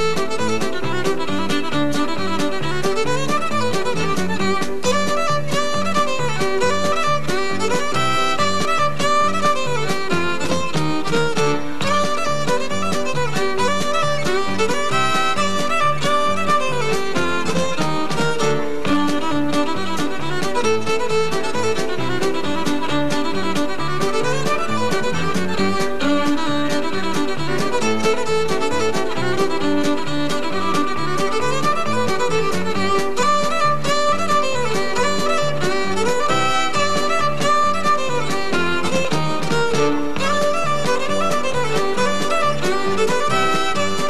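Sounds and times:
country band drums and bass: 0.0 - 44.0
fiddle playing a tune: 0.0 - 44.0.

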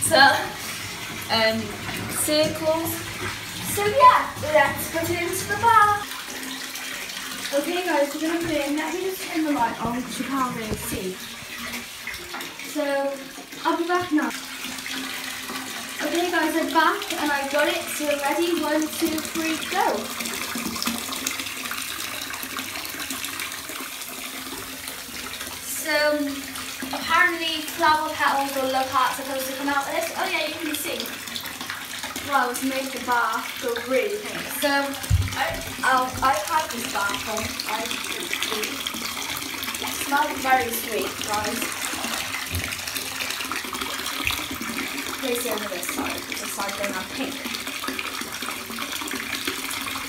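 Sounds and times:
tap water rushing into bathtub: 0.0 - 50.0.

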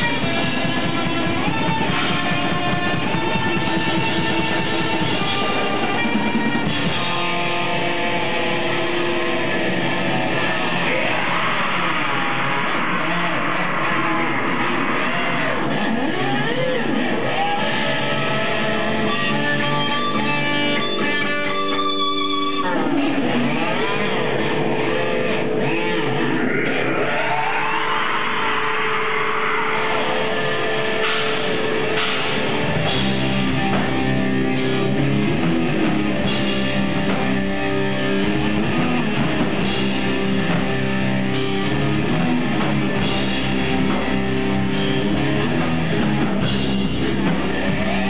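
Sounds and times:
metal band with distorted guitars: 0.0 - 48.0.

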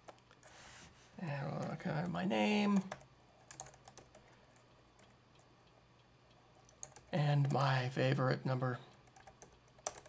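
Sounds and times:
faint keyboard typing: 0.0 - 0.6, 1.5 - 7.8, 8.8 - 10.0.

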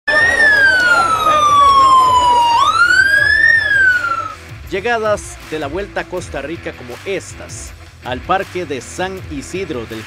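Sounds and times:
crowd voices: 0.1 - 4.4
siren wailing: 0.1 - 4.4.

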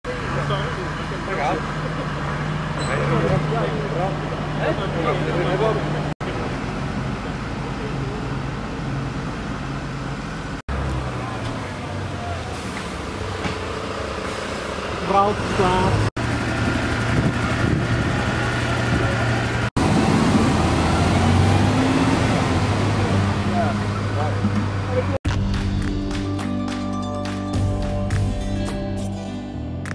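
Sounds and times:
people talking: 0.0 - 8.4, 11.1 - 12.9, 15.0 - 16.0, 22.6 - 25.2
diesel engine idling: 0.1 - 25.2.

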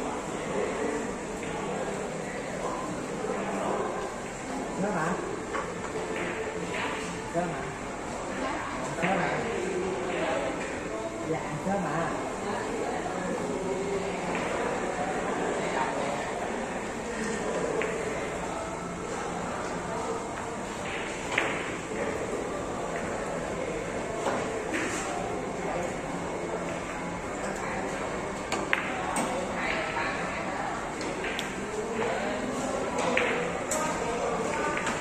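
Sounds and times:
billiard hall background noise: 0.0 - 35.0
faint voices: 0.0 - 35.0.

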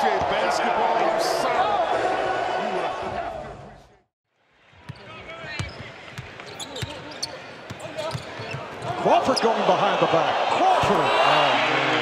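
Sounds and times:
quiet arena background: 0.0 - 12.0.

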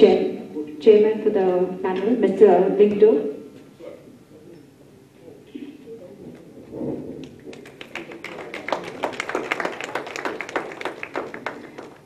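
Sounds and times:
audience clapping: 7.2 - 12.0.

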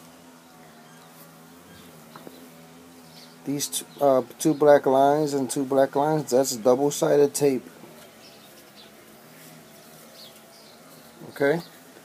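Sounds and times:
faint high bird chirps: 0.4 - 4.8.

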